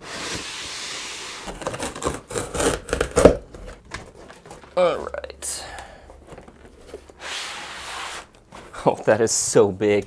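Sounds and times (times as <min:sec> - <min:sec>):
cardboard box scraping on tabletop: 0:00.0 - 0:04.6, 0:06.7 - 0:08.8
cardboard rubbing and knocking: 0:00.0 - 0:04.8.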